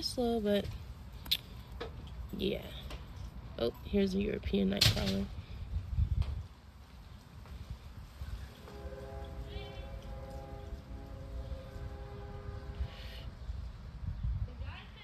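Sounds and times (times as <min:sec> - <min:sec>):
wind rumble on microphone: 0:03.4 - 0:15.0.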